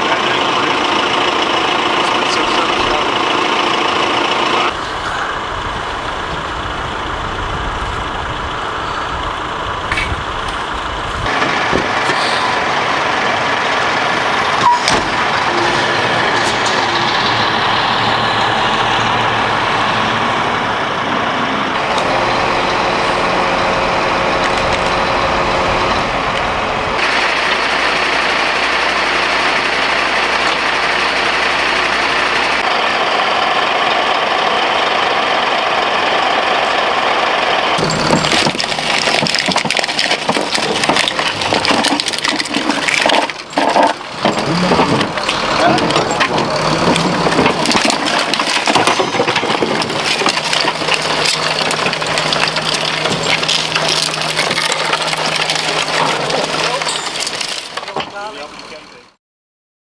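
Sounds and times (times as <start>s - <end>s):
indistinct voices: 0.0s - 59.2s
truck engines idling: 0.0s - 59.2s.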